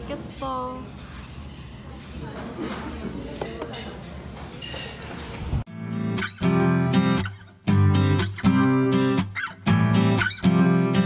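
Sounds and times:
restaurant room hum: 0:00.0 - 0:11.0
strummed acoustic guitar: 0:05.7 - 0:11.0.

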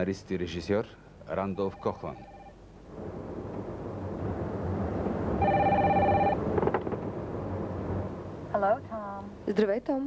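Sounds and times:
car phone ringing: 0:01.5 - 0:02.6, 0:05.4 - 0:06.4
road and engine noise in car: 0:02.9 - 0:09.8.

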